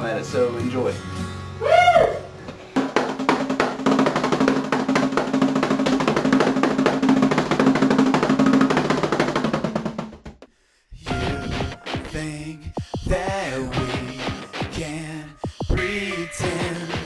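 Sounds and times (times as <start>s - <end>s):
electronic drum kit rapid hits: 2.8s - 17.0s.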